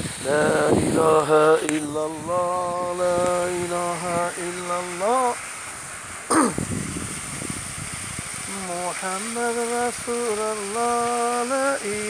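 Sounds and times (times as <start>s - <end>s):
short loud vocal call: 6.3s - 6.6s.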